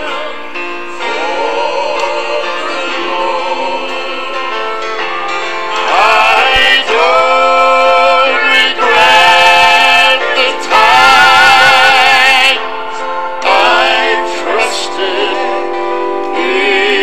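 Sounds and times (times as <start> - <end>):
gospel singing with band: 0.0 - 17.0
loud held vocal notes with vibrato: 0.0 - 17.0.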